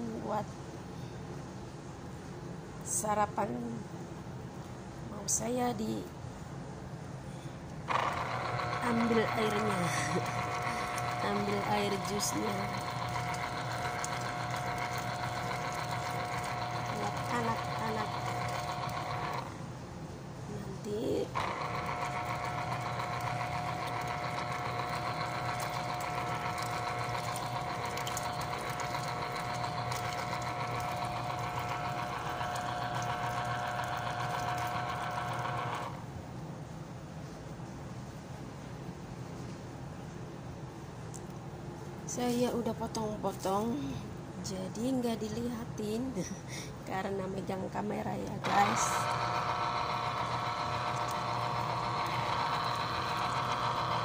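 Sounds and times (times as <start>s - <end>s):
electric juicer motor running: 7.8s - 19.6s, 21.1s - 36.1s, 48.2s - 54.0s.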